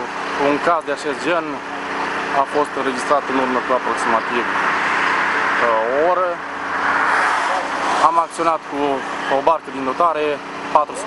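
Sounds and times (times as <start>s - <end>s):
man talking: 0.0s - 1.7s, 2.3s - 4.6s, 5.6s - 6.4s, 8.0s - 11.0s
loud rushing noise: 3.6s - 9.4s.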